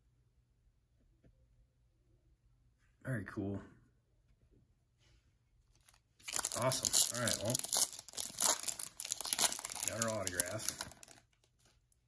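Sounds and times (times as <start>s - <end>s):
foil wrapper crinkling: 5.8s - 12.0s.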